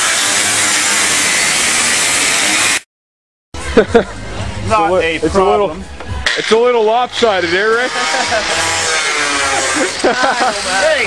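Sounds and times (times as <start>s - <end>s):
man laughing: 3.6s - 4.2s, 7.7s - 8.8s, 9.4s - 11.0s.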